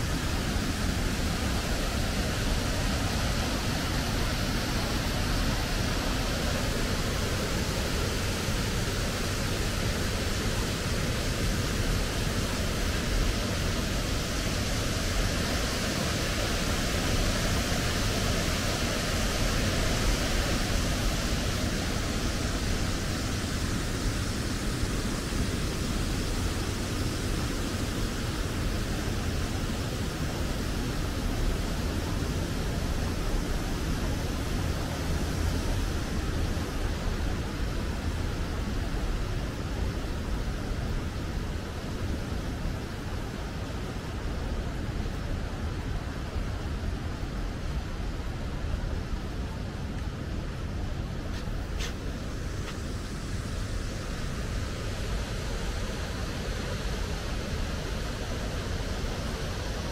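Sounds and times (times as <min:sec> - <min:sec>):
waterfall rushing into canal: 0:00.0 - 0:59.9.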